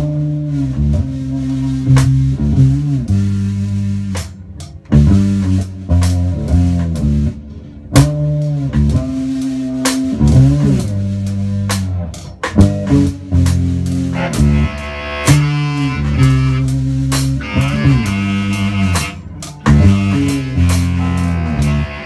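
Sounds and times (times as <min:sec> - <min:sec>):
drum kit: 0:00.0 - 0:22.0
electric bass riff: 0:00.0 - 0:22.0.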